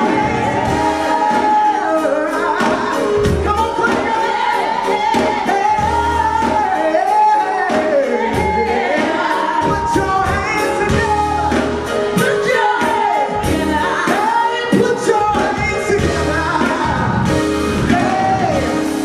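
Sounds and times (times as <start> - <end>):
female and male vocalists singing: 0.0 - 18.9
gospel band with keyboard: 0.0 - 19.0.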